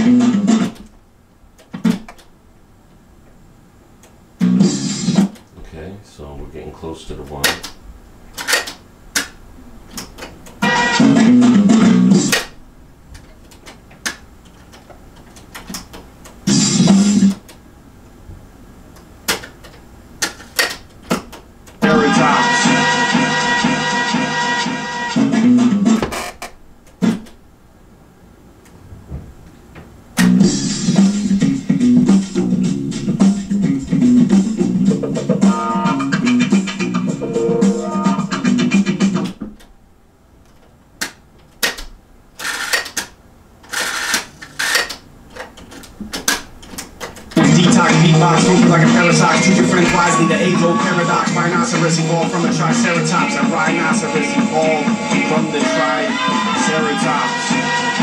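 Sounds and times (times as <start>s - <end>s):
music from cassette tape: 0.0s - 0.9s, 4.4s - 5.4s, 10.0s - 12.6s, 15.4s - 17.6s, 21.7s - 26.3s, 30.2s - 39.7s, 47.3s - 58.0s.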